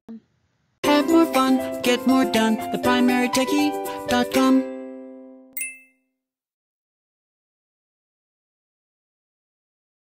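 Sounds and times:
bright ding: 0:05.6 - 0:06.0.

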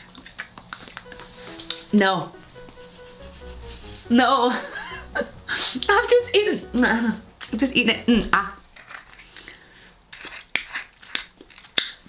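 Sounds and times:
lip smacking: 0:00.0 - 0:01.4.

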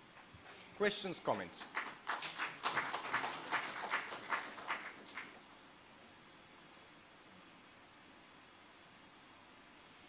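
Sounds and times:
sparse hand clapping: 0:01.3 - 0:05.4.

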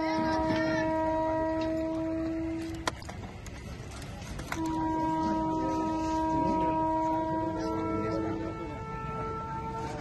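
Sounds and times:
conch shell blown: 0:00.0 - 0:03.2, 0:04.4 - 0:10.0.

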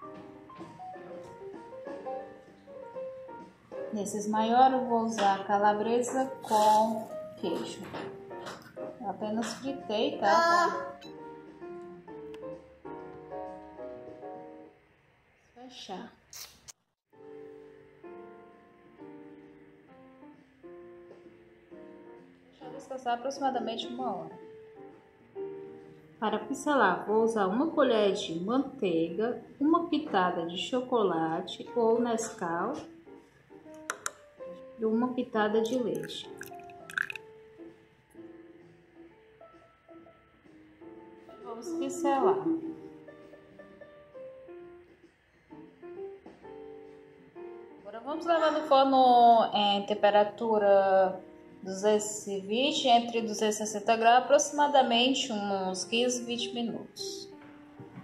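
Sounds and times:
soft piano music: 0:00.0 - 0:14.9, 0:17.1 - 0:58.0.

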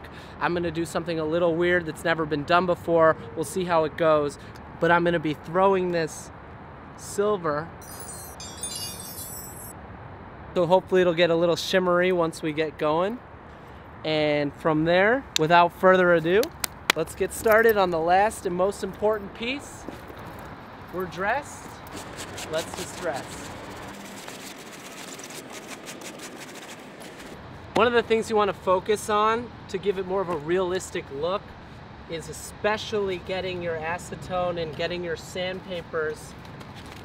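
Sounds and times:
faint outdoor background: 0:00.0 - 0:37.0
glittering chime sparkle: 0:07.8 - 0:09.7
sponge scrubbing leather: 0:21.9 - 0:27.4.

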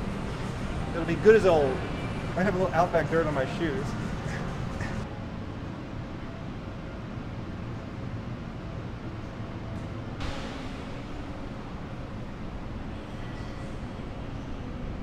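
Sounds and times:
low rumbling room tone: 0:00.0 - 0:15.0.

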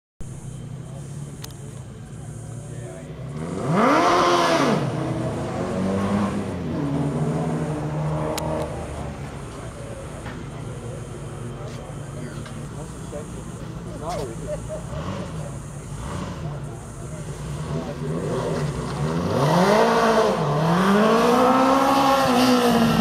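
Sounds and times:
motorcycle engine revving: 0:02.2 - 0:10.2, 0:12.5 - 0:23.0.

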